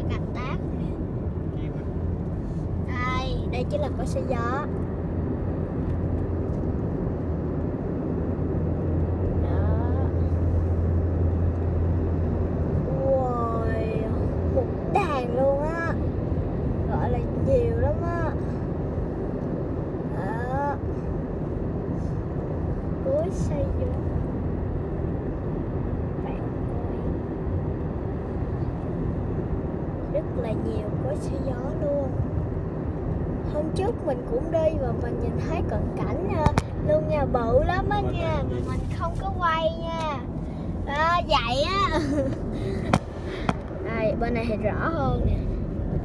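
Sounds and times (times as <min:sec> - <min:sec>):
low hum: 0:00.0 - 0:46.0
road and engine rumble: 0:00.0 - 0:46.0.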